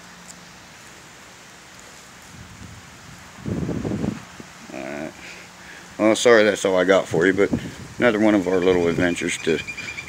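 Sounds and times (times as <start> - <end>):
outdoor background hiss: 0.0 - 10.0
wind rumble on microphone: 2.2 - 4.6, 6.9 - 10.0.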